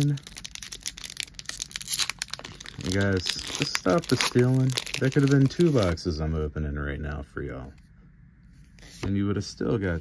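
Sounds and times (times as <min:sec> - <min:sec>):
foil wrapper crinkling and tearing: 0:00.0 - 0:05.9.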